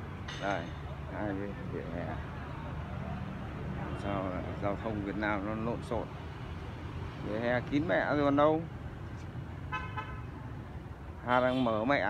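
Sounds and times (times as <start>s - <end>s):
street traffic hum: 0.0s - 12.0s
vehicle horn toot: 9.7s - 10.3s.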